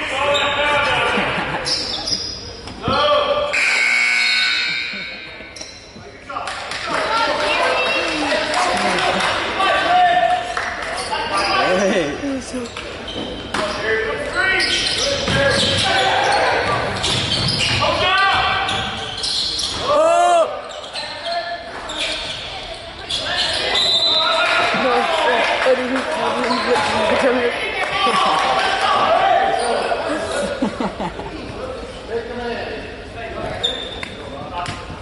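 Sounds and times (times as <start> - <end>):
spectators talking: 0.0 - 35.0
shoe squeak: 0.2 - 0.6, 1.6 - 2.7, 3.6 - 6.0, 12.5 - 19.9, 20.6 - 24.4, 26.4 - 26.9, 29.5 - 30.0, 33.5 - 34.3.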